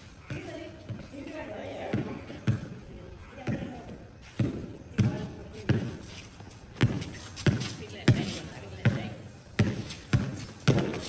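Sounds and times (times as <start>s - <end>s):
basketball bouncing on concrete: 0.2s - 11.0s.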